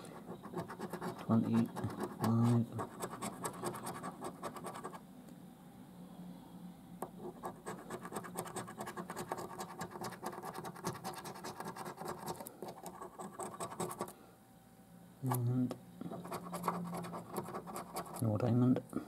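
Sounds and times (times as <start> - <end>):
coin scraping a scratchcard: 0.4 - 5.0, 7.2 - 14.1, 16.1 - 18.2.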